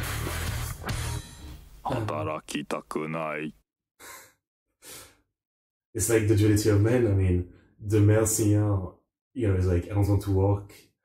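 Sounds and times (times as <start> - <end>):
man exhaling breathily: 4.0 - 5.3.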